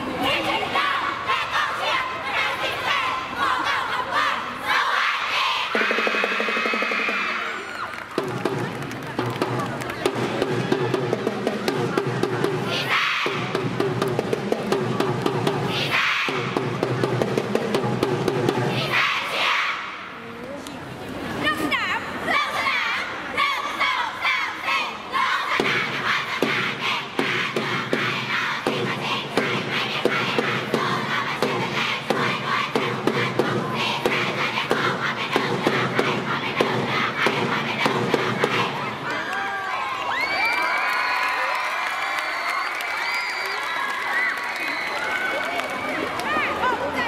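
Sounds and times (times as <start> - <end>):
girls chanting in unison: 0.0 - 6.3, 12.6 - 13.6, 15.6 - 16.6, 18.6 - 20.1, 22.2 - 39.4
steady drum beats: 5.6 - 19.6, 25.2 - 39.1
crowd of girls cheering and screaming: 5.7 - 8.2, 39.0 - 46.6.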